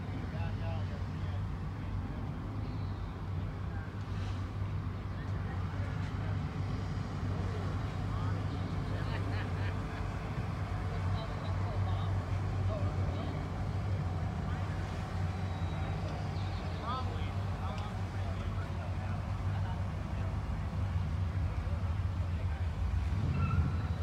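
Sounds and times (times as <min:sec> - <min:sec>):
faint voices talking: 0:00.0 - 0:24.0
vehicle engine idling: 0:00.0 - 0:24.0.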